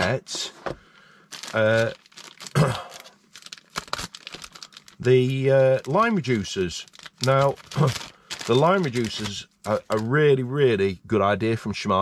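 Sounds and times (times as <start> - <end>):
plastic bag crinkling: 1.2 - 10.3.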